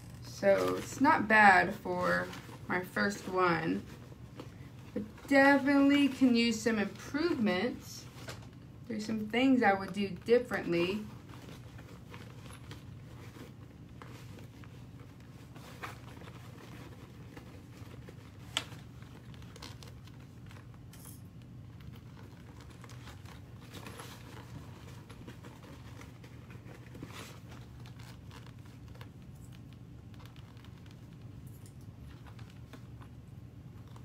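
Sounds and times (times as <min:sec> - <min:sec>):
soft rustling: 0:00.0 - 0:34.0
steady low hum: 0:00.0 - 0:34.0.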